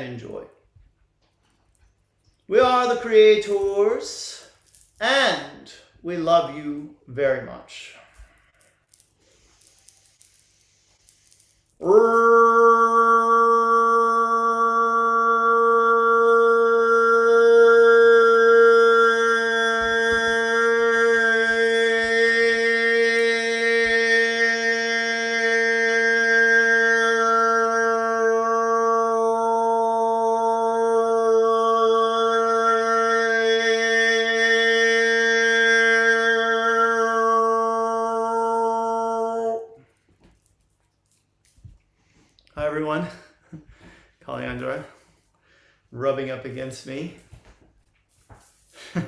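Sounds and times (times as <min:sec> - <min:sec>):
man singing a long tone: 0:11.8 - 0:39.9.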